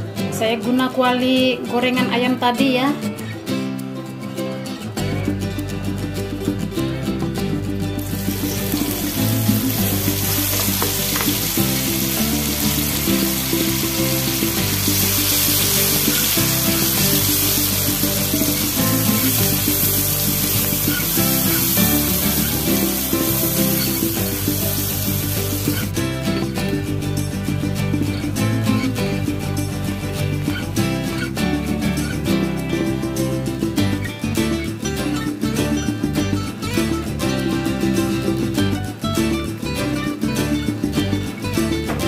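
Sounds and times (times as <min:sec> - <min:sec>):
background music: 0:00.0 - 0:42.0
paste sizzling in hot oil: 0:08.0 - 0:25.9.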